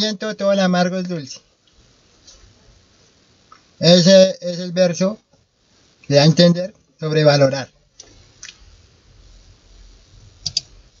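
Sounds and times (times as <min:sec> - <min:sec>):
faint low hum: 0:00.0 - 0:11.0
computer mouse clicks: 0:10.4 - 0:10.7.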